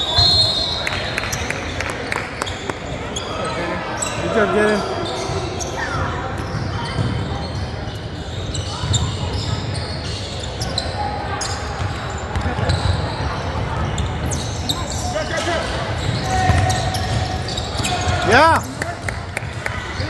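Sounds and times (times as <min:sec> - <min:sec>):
sneakers squeaking: 0:00.0 - 0:20.0.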